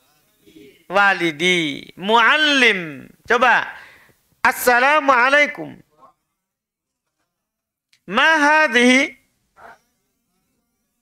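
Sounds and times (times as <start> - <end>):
man speaking: 0.6 - 6.2, 8.0 - 9.8.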